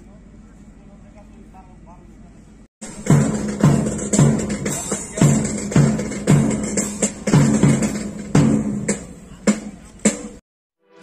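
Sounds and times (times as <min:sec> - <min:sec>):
bass drum beat: 0:02.8 - 0:10.4
snare drum strokes: 0:02.8 - 0:10.4.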